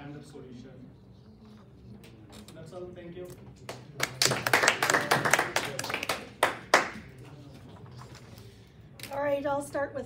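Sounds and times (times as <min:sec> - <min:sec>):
small group clapping: 0:03.6 - 0:07.2.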